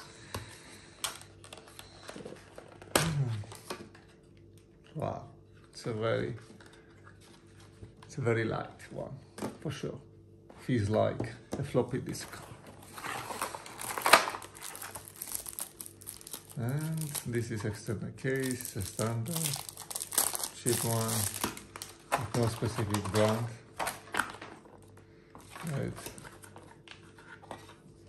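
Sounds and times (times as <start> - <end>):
faint steady hum: 0.0 - 28.0
cardboard and paper crinkling: 12.1 - 27.9.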